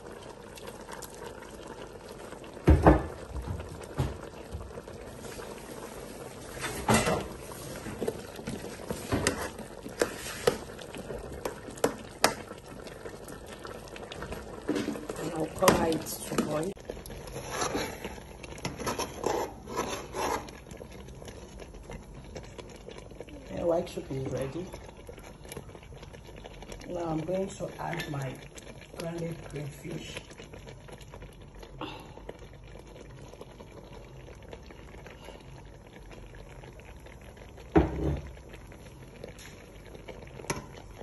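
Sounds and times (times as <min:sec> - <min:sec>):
soup boiling and bubbling: 0:00.0 - 0:41.0
metal spoon scraping pot: 0:17.2 - 0:20.6.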